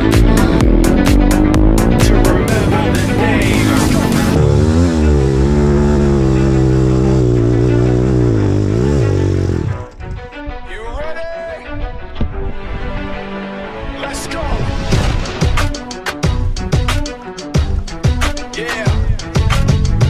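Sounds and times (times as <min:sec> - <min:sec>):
music with driving beat: 0:00.0 - 0:09.8, 0:14.9 - 0:20.0.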